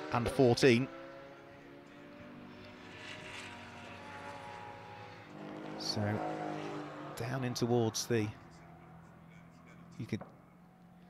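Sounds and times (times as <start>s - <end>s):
distant race car engines droning: 0.0s - 11.0s.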